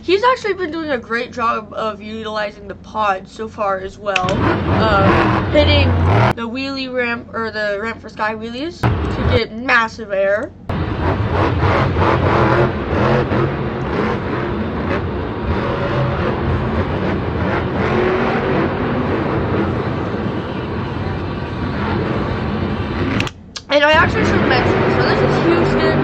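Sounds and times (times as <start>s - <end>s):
monster truck engine roaring: 4.2s - 6.5s, 10.7s - 26.0s.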